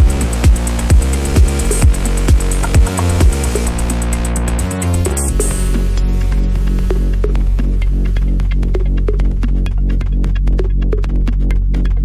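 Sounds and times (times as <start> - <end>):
progressive house music: 0.0 - 12.0.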